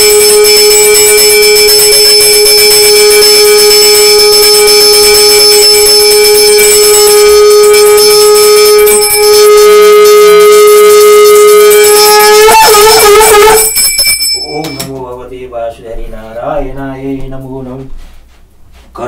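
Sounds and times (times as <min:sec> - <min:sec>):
conch shell blown: 0:00.0 - 0:13.8.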